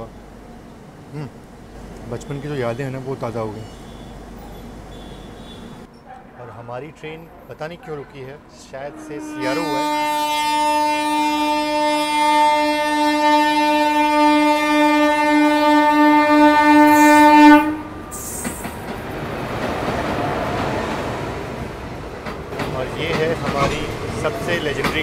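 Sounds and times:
train coaches rumbling past: 0.0s - 25.0s
locomotive horn: 3.6s - 5.9s, 8.6s - 18.4s.

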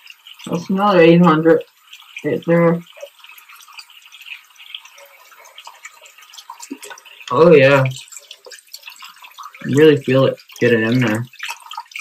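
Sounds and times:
faucet running into sink: 0.0s - 12.0s
toothbrush scrubbing teeth: 0.0s - 12.0s.

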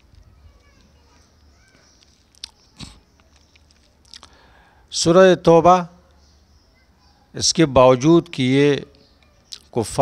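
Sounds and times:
mouth clicks and lip smacks: 2.0s - 4.4s, 9.5s - 9.7s.

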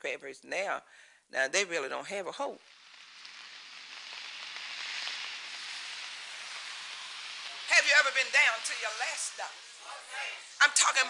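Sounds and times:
steady rain falling: 2.3s - 11.0s.

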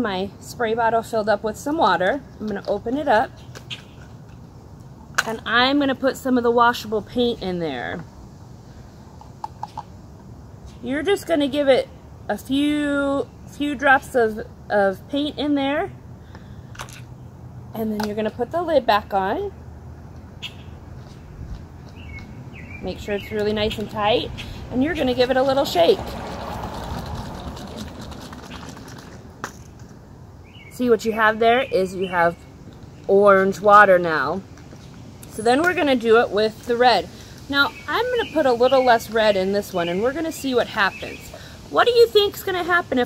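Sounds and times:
low outdoor background: 0.0s - 43.0s
water sloshing in spray bottle: 24.8s - 29.8s.

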